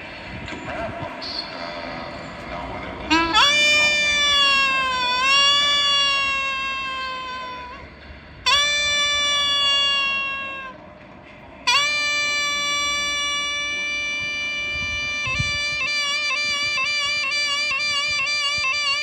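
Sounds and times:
double-reed horn playing held notes: 1.6 - 10.8, 11.6 - 19.0.

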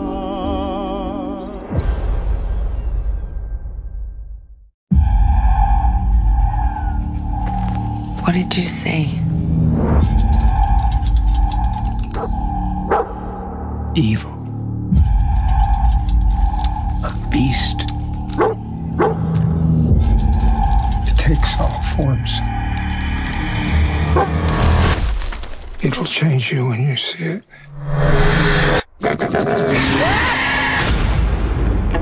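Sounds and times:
ominous trailer score: 0.3 - 26.4, 27.6 - 32.0
eerie high tones: 4.9 - 19.0
low drone: 4.9 - 25.0.

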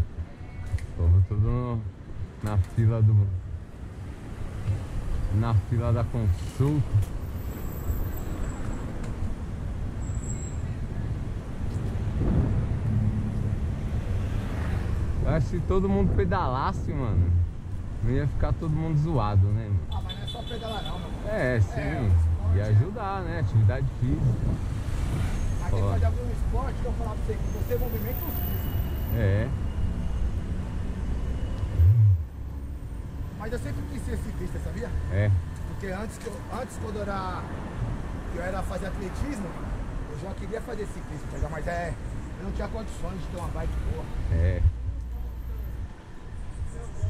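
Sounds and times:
street traffic: 0.0 - 47.0
wind and tyre rumble: 0.0 - 47.0
passing vehicle engine hum: 10.9 - 19.8, 21.1 - 39.9
wind rumble on microphone: 11.0 - 19.9, 21.5 - 26.6, 31.7 - 32.4
low thump: 12.2 - 13.0.

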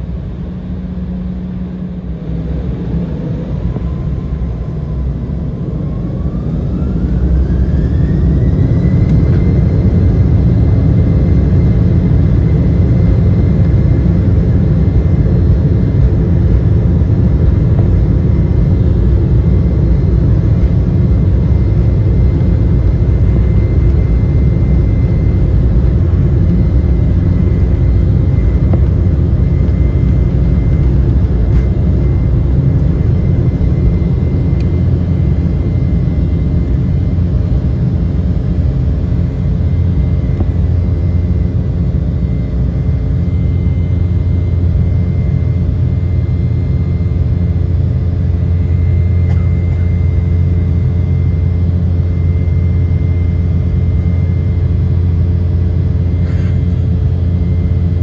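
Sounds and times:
deep engine rumble: 0.0 - 58.0
jet engine fan whine: 0.0 - 58.0.

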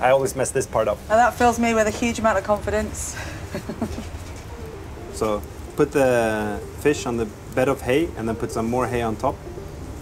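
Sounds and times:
soft low chuckles: 3.3 - 4.4.

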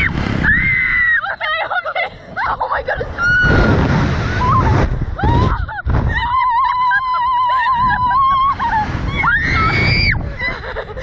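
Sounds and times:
low rumbling noise: 0.0 - 11.0.

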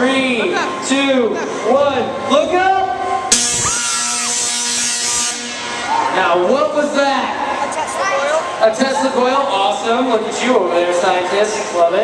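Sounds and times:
tesla coil spark buzz: 3.3 - 5.9.

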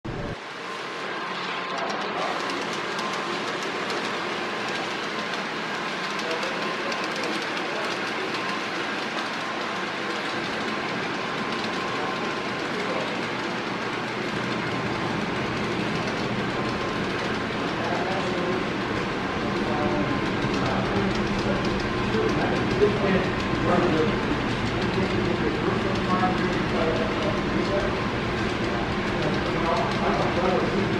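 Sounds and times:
model train wheels clattering on rail: 1.3 - 14.6, 15.3 - 30.9.

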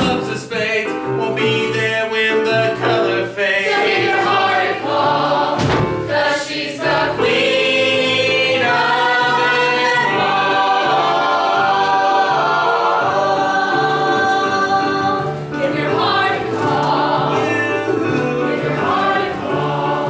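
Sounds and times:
cast singing in chorus: 3.4 - 20.0.

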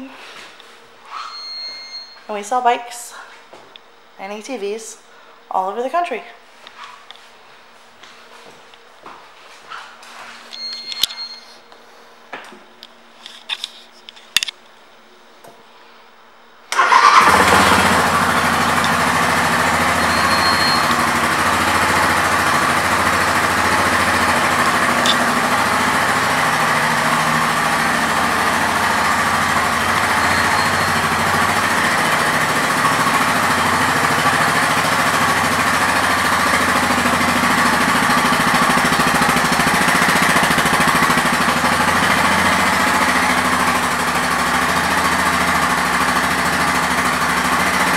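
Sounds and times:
atv engine starting and idling: 16.7 - 47.9.

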